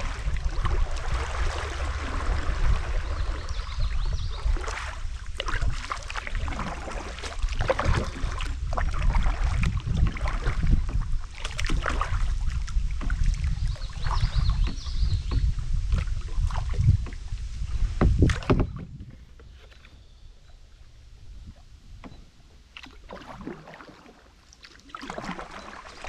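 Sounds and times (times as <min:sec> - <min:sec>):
wind on microphone: 0:00.0 - 0:22.4
paddle splashing in water: 0:00.0 - 0:26.0.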